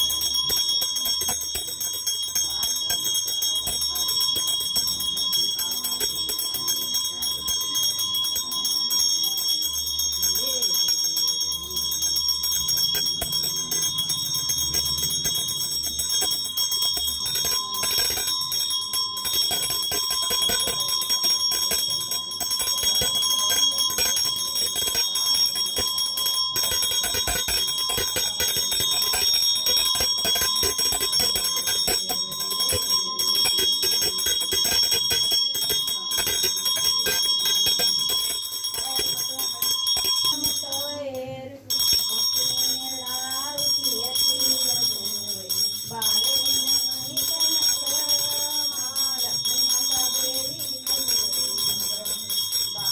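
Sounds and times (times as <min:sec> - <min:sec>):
brass hand bell ringing rapidly: 0:00.0 - 0:41.0, 0:41.7 - 0:52.9.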